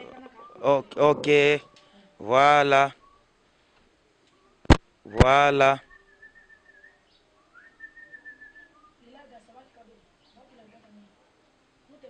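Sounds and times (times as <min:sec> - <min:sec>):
faint high whistle: 0:05.8 - 0:09.0.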